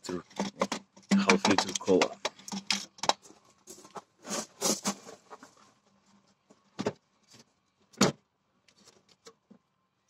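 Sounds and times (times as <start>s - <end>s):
handling clicks and rustling: 0.1s - 8.0s.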